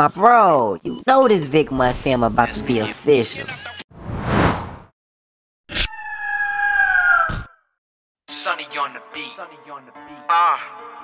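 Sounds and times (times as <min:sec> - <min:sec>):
bird of prey screech: 0:05.7 - 0:07.7.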